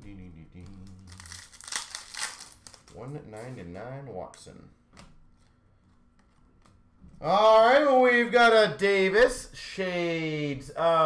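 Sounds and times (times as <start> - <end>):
foil wrapper crinkling and tearing: 1.0 - 3.5.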